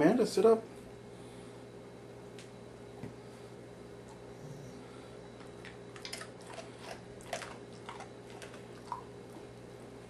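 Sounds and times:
low electrical hum: 0.0s - 10.0s
dog mouth clicks and smacks: 5.4s - 9.1s.

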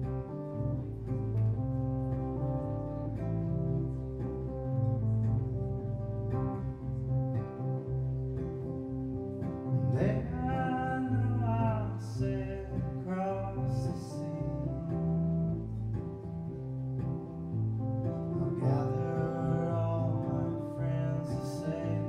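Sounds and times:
low held keyboard notes: 0.0s - 22.0s
strummed acoustic guitar: 0.0s - 22.0s
man singing: 9.8s - 15.3s, 18.4s - 22.0s.

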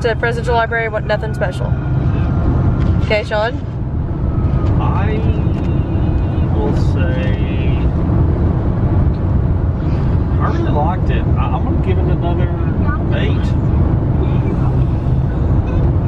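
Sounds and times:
muffled voices: 0.0s - 8.0s, 9.7s - 16.0s
road and engine noise: 0.0s - 16.0s.

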